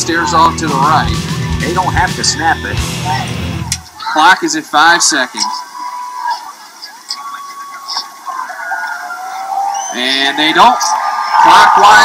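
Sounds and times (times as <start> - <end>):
distant crowd calling out: 0.0 - 12.0.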